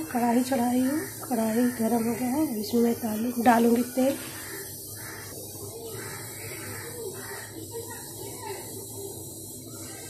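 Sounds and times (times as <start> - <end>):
faint voices: 0.0 - 10.0
gas stove burner hissing: 0.0 - 10.0.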